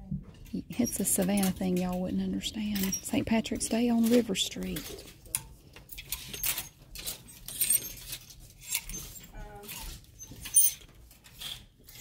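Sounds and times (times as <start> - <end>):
plastic hangers clacking on a rack: 0.2 - 12.0.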